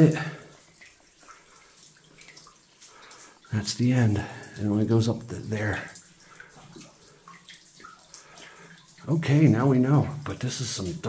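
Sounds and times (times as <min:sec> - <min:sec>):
small splashes: 0:00.0 - 0:11.0
water dripping into water: 0:00.0 - 0:11.0.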